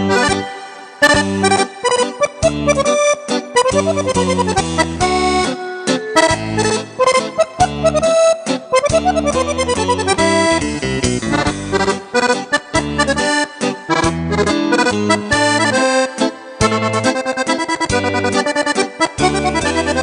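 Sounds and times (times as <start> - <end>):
piano accordion playing dance tune: 0.0 - 20.0.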